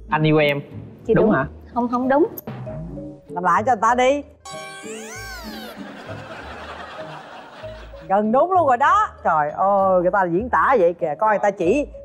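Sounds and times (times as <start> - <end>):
light background music: 0.0 - 12.0
comic pitched cry: 4.5 - 5.9.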